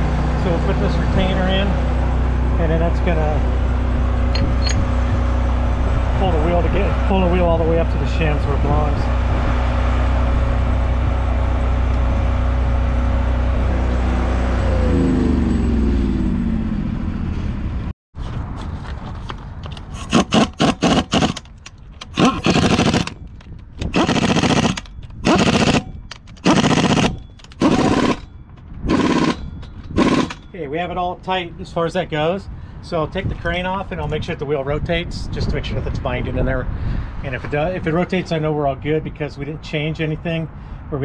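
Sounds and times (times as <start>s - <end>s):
low machine drone: 0.0s - 17.9s, 19.9s - 30.8s
impact wrench bursts: 19.9s - 23.2s, 23.8s - 28.3s, 28.9s - 30.4s.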